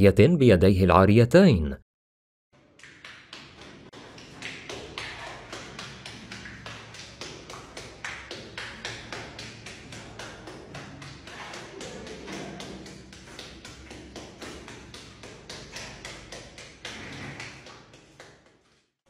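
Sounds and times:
hand patting wet plaster: 2.8 - 18.7.

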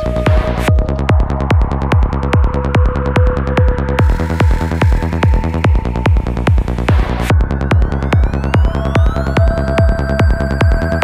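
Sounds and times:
kick drum: 0.0 - 11.0
pulsing bass: 0.0 - 11.0.

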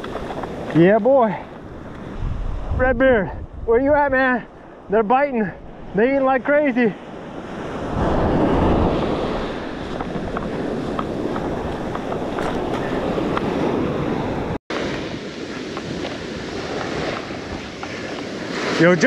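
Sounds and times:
wind buffeting microphone: 0.0 - 19.0
surf washing onto beach: 5.3 - 19.0.

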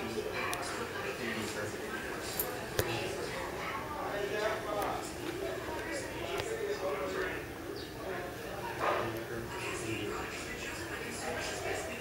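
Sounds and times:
indistinct talking: 0.0 - 12.0.

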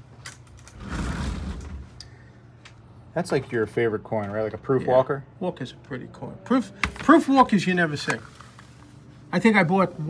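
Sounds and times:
glass case sliding rumble: 0.7 - 2.0.

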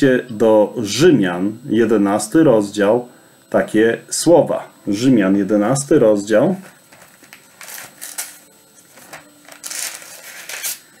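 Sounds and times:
thin pages turning: 6.9 - 10.8.

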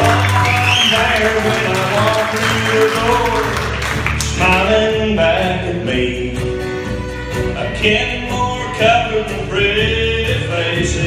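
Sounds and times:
acoustic guitars strummed: 0.0 - 11.0.

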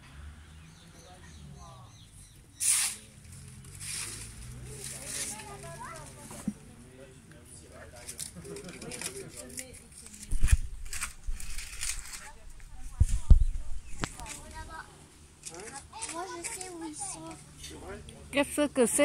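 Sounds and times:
faint voices outdoors: 0.0 - 19.0
short loud hiss: 2.6 - 3.1.

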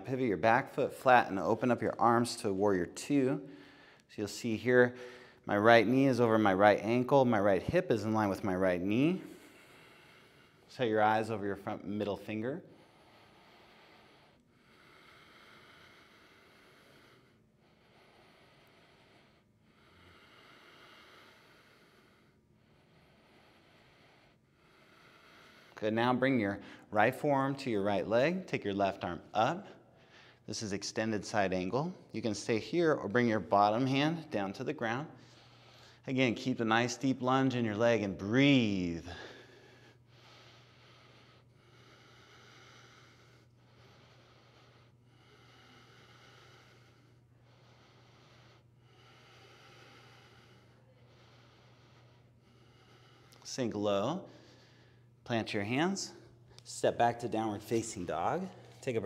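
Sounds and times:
steady low hum: 0.0 - 59.0
breathing through the nose: 3.4 - 4.1, 4.9 - 5.4, 9.1 - 10.8, 12.6 - 25.8, 35.1 - 36.0, 39.0 - 53.6
throaty breath through the nose: 9.2 - 10.7.

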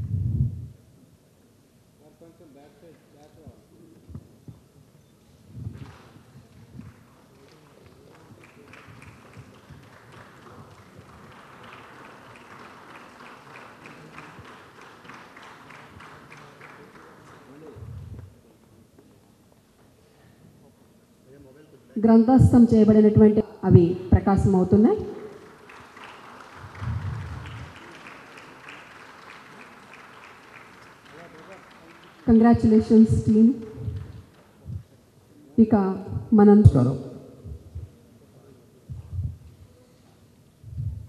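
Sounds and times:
audience applauding: 5.7 - 17.8, 25.1 - 34.6.

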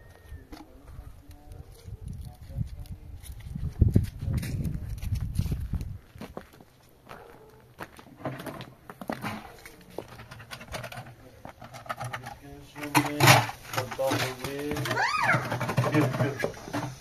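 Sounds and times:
footsteps on frozen stony ground: 0.9 - 10.3.

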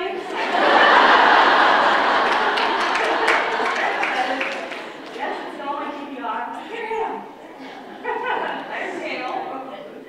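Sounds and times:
women laughing and chattering: 0.0 - 10.0
people clapping: 0.2 - 5.6.

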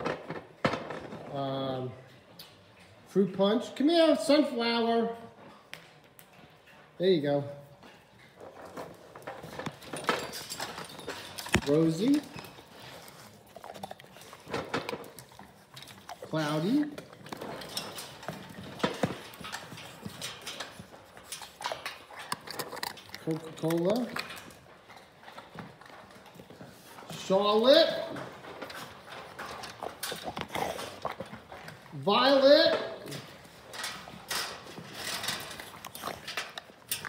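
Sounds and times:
dogs' claws clicking and scuffling: 7.7 - 37.0.

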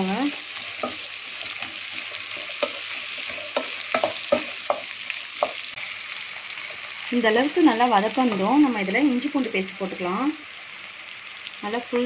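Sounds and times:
vegetables sizzling in hot oil: 0.0 - 12.0
wooden spatula knocking on pan: 3.5 - 5.6.

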